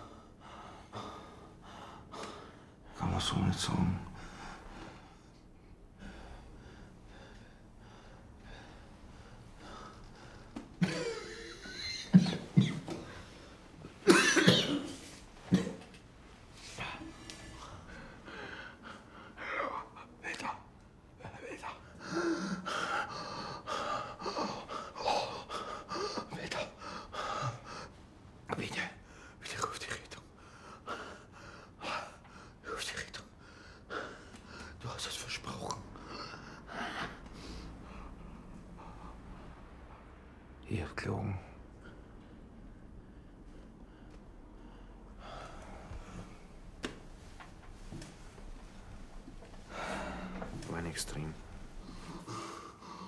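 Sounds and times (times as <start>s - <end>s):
person breathing heavily: 4.0s - 12.2s, 16.5s - 20.2s, 21.6s - 28.0s, 47.9s - 50.7s, 51.3s - 53.0s.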